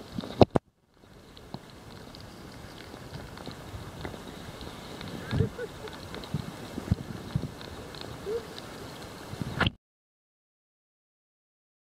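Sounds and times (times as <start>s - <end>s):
underwater low rumble: 0.0s - 9.6s.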